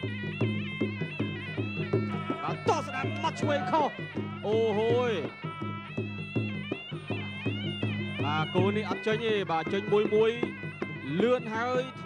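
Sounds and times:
reed pipe wavering melody: 0.0s - 12.0s
steady drum beat: 0.0s - 12.0s.

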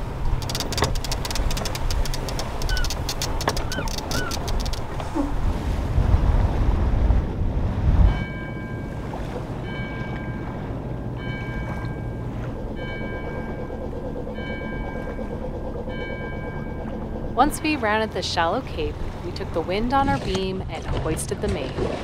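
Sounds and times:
water washing: 0.0s - 5.8s
wind buffeting microphone: 0.0s - 12.9s.

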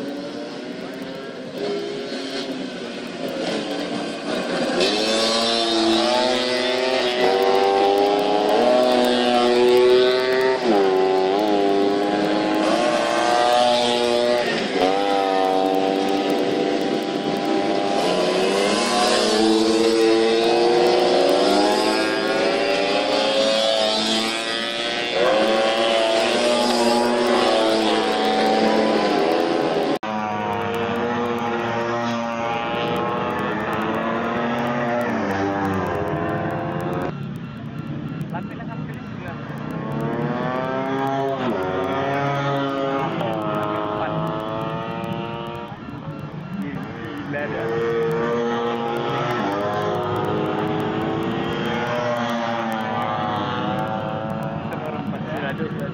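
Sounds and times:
scooter engines revving: 0.0s - 55.9s
single scooter passing: 3.3s - 37.2s.

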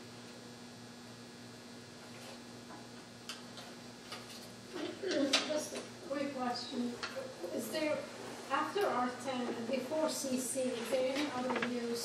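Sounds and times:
low electrical hum: 0.0s - 12.0s
person speaking: 4.8s - 12.0s.

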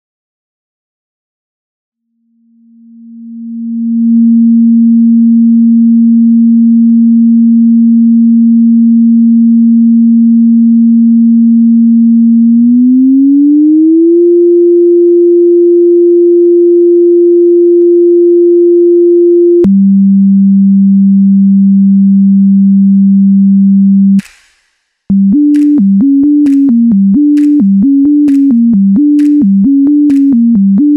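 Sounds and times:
sine wave tone: 2.0s - 24.2s
click: 25.5s - 30.6s.

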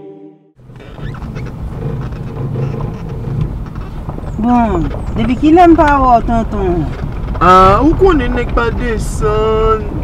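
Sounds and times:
engine and road rumble: 0.6s - 10.0s.

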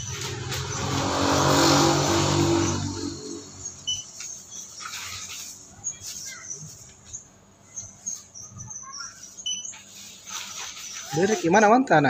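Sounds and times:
vehicle engine passing by: 0.0s - 4.0s.

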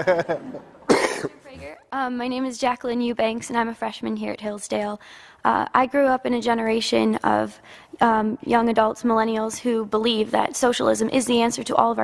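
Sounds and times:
man laughing speech: 0.0s - 1.2s
person coughing: 0.9s - 1.6s.

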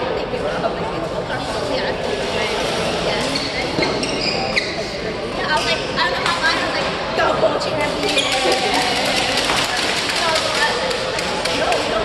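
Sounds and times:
voices in large hall: 0.0s - 12.0s
shoes squeaking on court floor: 3.2s - 5.0s, 7.9s - 9.0s.

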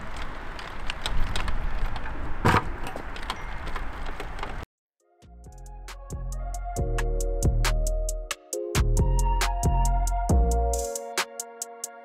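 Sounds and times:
outdoor background noise: 0.0s - 4.7s
music: 5.0s - 12.0s.

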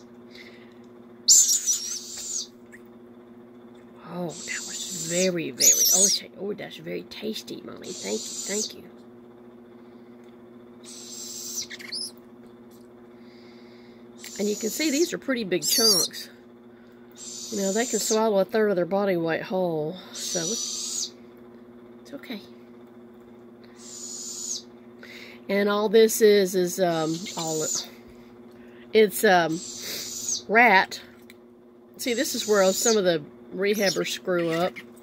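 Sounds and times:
steady low hum: 0.0s - 35.0s
owl nestling begging hiss: 1.3s - 2.5s, 4.2s - 6.2s, 7.8s - 8.8s, 10.8s - 12.2s, 14.2s - 16.2s, 17.2s - 18.3s, 20.1s - 21.2s, 23.8s - 24.7s, 26.9s - 27.9s, 29.5s - 30.5s, 32.1s - 33.1s, 33.7s - 34.5s.

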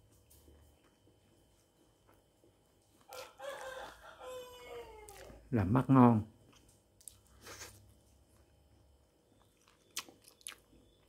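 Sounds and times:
rooster crowing: 3.1s - 5.4s.

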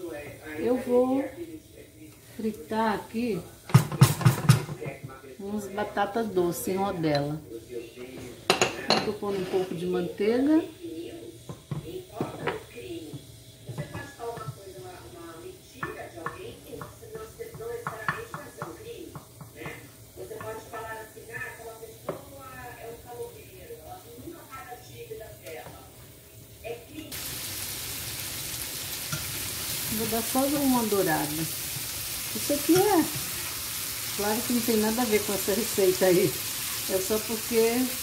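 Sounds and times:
food sizzling in a pan: 0.0s - 38.0s.

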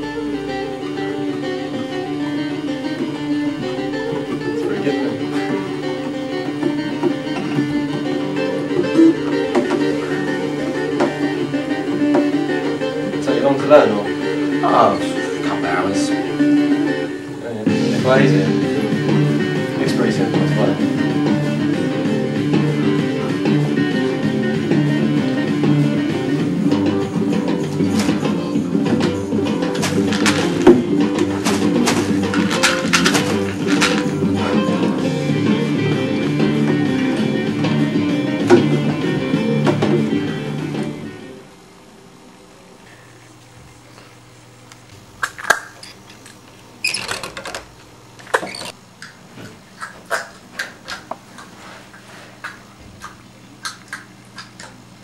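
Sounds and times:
guitar strummed and picked: 0.0s - 41.4s.

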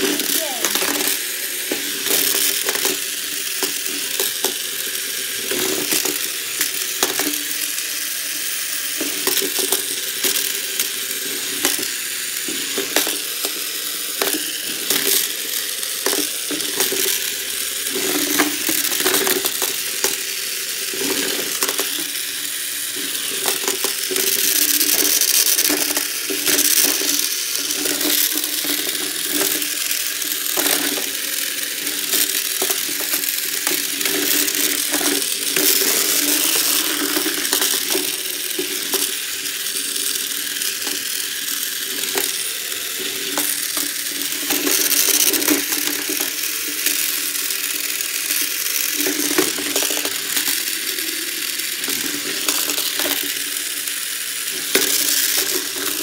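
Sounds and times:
plastic clicks and clacks: 0.0s - 4.6s, 9.0s - 15.4s, 16.0s - 20.2s, 21.0s - 22.2s, 23.0s - 53.5s, 54.5s - 56.0s
toy robot motors whirring: 0.0s - 56.0s.

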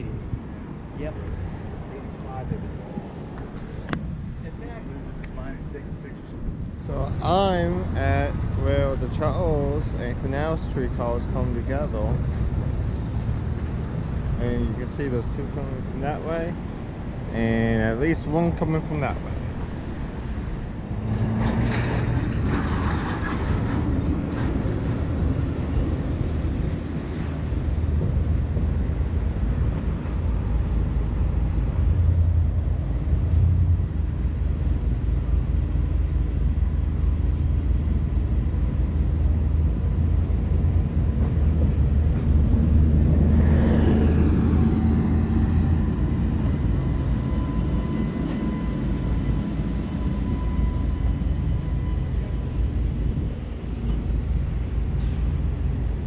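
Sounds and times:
street traffic rumble: 0.0s - 56.0s
streetcar rolling on rails: 0.0s - 56.0s.

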